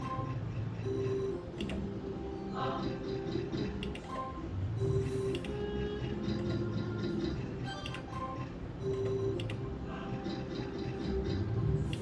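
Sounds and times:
slot machine electronic jingle: 0.0 - 12.0.

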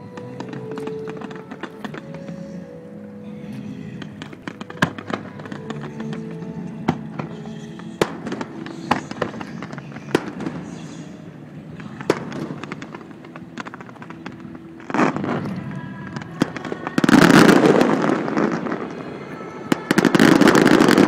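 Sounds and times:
fireworks banging: 0.0 - 21.0
music: 0.0 - 21.0.

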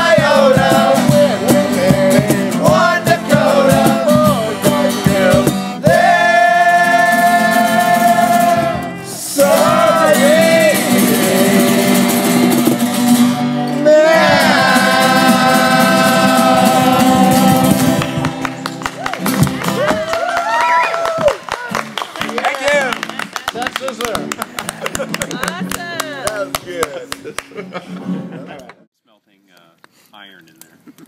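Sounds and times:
men singing together: 0.0 - 13.0, 13.8 - 18.5
resonator guitar: 0.0 - 20.2
strummed acoustic guitars: 0.0 - 20.2, 21.7 - 28.7.

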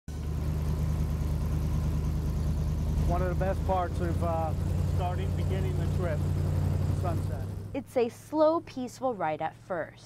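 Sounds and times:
airboat engine and propeller: 0.1 - 7.8.

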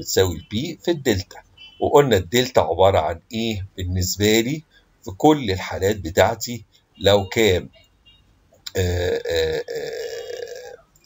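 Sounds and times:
man hesitating in speech: 8.7 - 10.8.

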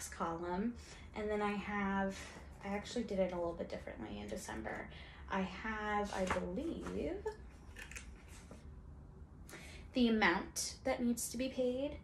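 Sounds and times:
woman's voice: 0.0 - 7.4, 9.9 - 12.0.

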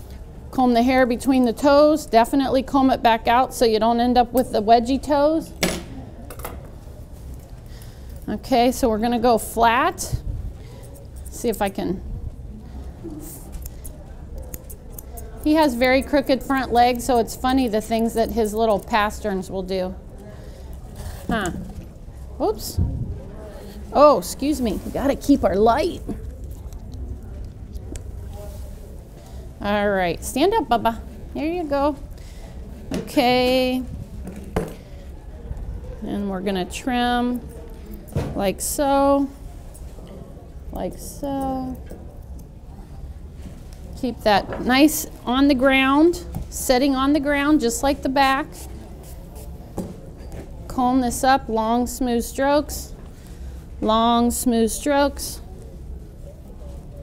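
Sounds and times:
low background hum: 0.0 - 57.0
low background murmur: 0.0 - 57.0.

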